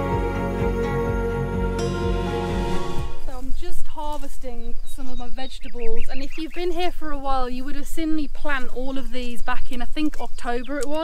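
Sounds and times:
woman talking: 3.2 - 11.0.

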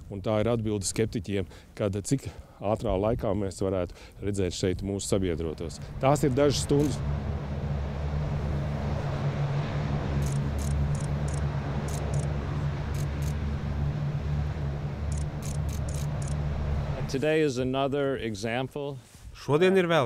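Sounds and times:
diesel truck engine droning: 5.0 - 17.6.

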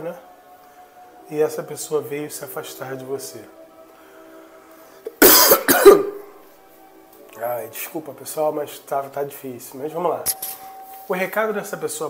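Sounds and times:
man coughing: 5.1 - 6.2.

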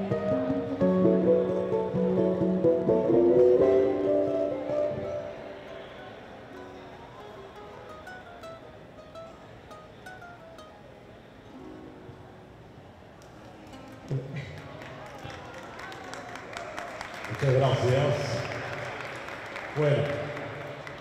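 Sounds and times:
classical guitar melody: 0.0 - 12.7.

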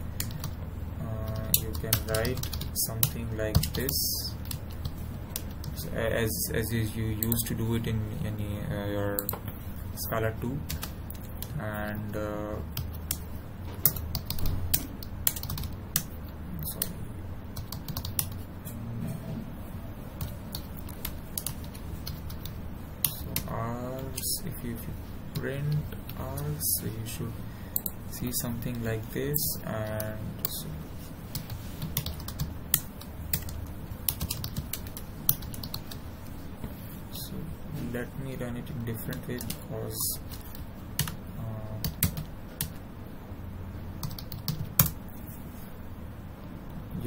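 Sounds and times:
low steady hum: 0.0 - 47.0
keyboard typing clicks: 12.8 - 17.0, 31.4 - 36.0.

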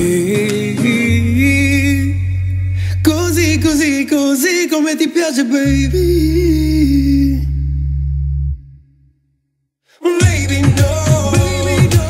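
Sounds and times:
sustained low bass note: 5.7 - 8.9.

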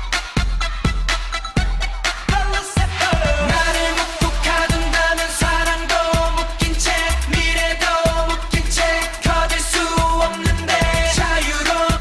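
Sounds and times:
kick drum beat: 0.0 - 12.0
man singing over pop track: 2.3 - 12.0.

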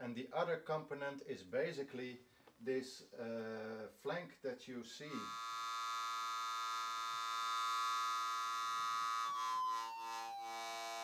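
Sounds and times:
synthesizer tone with overtones: 5.2 - 11.0.

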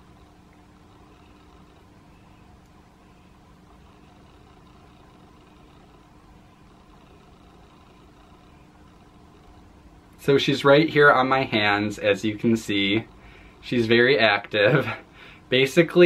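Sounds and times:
room hum with faint tone: 0.0 - 16.0.

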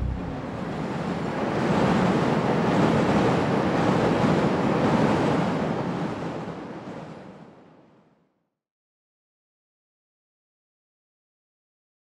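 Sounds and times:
elevated train rumbling past: 0.0 - 1.1.

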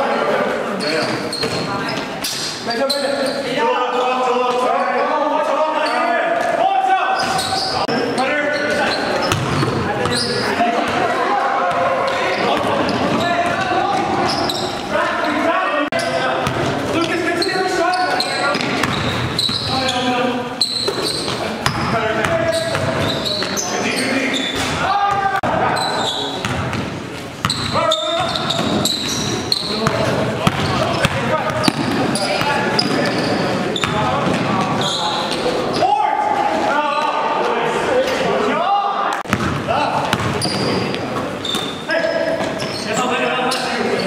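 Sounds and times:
echoing voices: 0.0 - 44.0
basketball dribbling on gym floor: 29.8 - 33.2.

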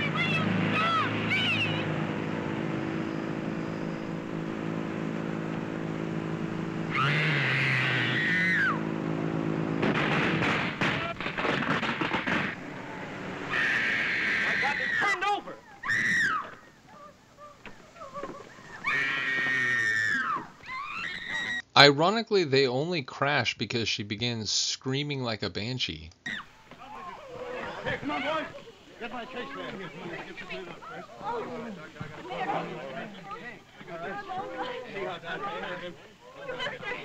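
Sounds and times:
steady drone: 0.0 - 14.9
crashing noise: 6.4 - 14.6
woman screaming: 6.9 - 8.8, 13.5 - 21.6.

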